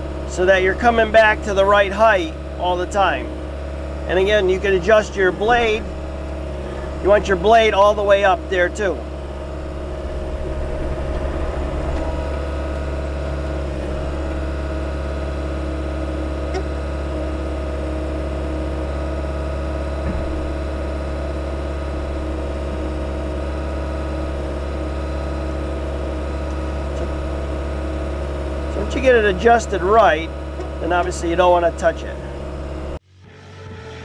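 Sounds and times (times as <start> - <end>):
excavator diesel engine running: 0.0 - 33.0.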